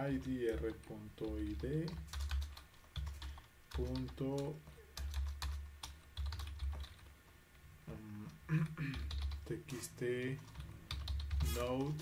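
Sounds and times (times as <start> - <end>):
computer keyboard typing: 0.0 - 7.1, 8.9 - 9.5, 10.1 - 12.0
person mumbling: 7.9 - 9.1.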